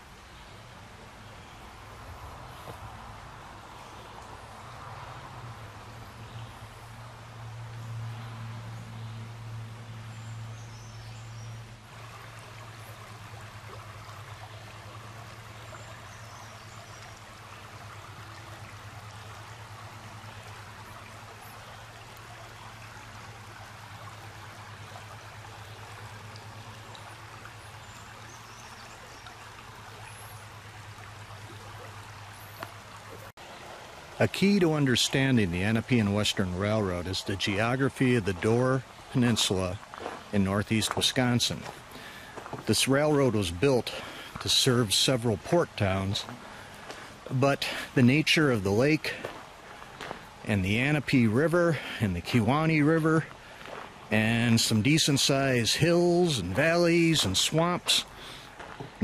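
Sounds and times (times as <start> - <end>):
stream rushing over riffles: 0.0 - 59.0.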